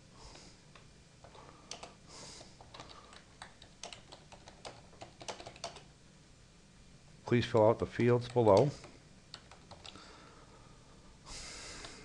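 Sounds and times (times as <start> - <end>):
computer keyboard typing: 1.2 - 5.9, 7.6 - 10.0.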